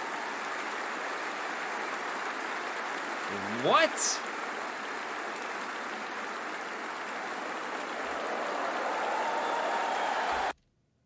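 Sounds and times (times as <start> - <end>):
audience applauding: 0.0 - 10.6.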